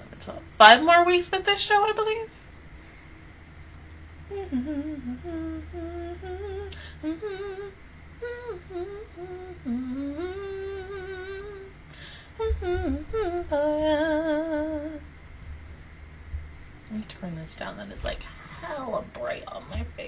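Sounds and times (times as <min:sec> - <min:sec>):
woman humming: 0:04.3 - 0:15.1.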